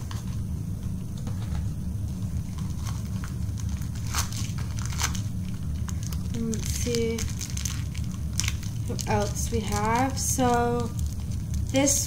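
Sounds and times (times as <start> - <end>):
steady low hum: 0.0 - 12.0
plastic packaging crinkling: 2.2 - 12.0.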